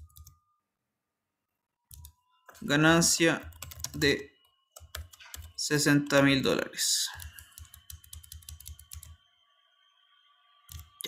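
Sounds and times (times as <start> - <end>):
computer keyboard typing: 0.0 - 0.4, 1.9 - 2.2, 3.4 - 5.6, 7.1 - 9.2, 10.7 - 11.0.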